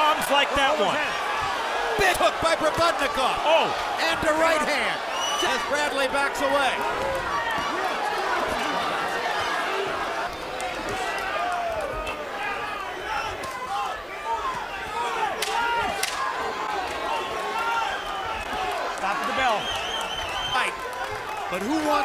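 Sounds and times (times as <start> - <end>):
crowd yelling and cheering: 0.0 - 22.0.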